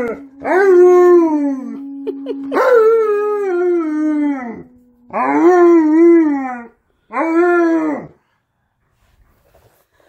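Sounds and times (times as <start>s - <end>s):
dog howling: 0.0s - 8.2s.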